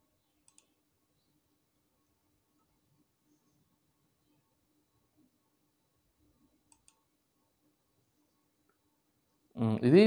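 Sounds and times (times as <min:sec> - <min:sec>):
computer mouse clicks: 0:00.4 - 0:00.8, 0:06.6 - 0:07.1.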